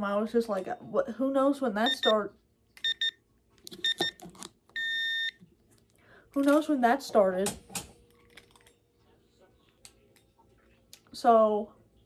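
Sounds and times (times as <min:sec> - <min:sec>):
kitchen appliance beeping: 0:01.8 - 0:02.2, 0:02.8 - 0:04.2, 0:04.8 - 0:05.4.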